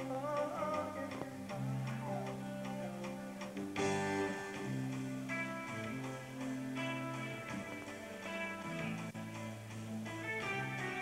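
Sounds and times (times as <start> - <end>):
bass guitar: 0.0 - 11.0
electric guitar: 0.0 - 11.0.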